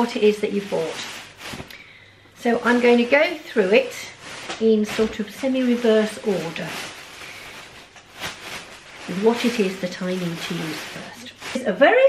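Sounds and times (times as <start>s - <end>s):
fabric bag rustling: 0.0s - 12.0s.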